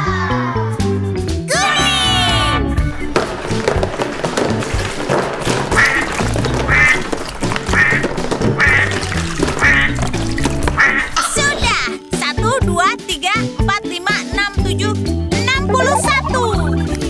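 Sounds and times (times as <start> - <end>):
upbeat children's music: 0.0 - 4.8, 7.6 - 17.0.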